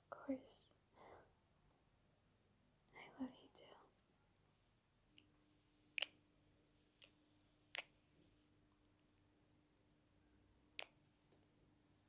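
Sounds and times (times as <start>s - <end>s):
woman whispering: 0.0s - 0.8s, 2.9s - 3.9s
mouth click: 6.0s - 6.2s, 7.0s - 8.0s, 10.8s - 11.0s.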